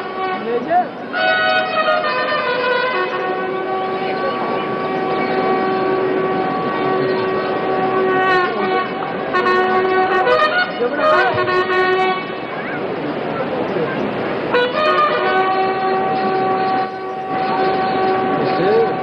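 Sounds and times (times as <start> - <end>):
crowd din: 0.0 - 19.0.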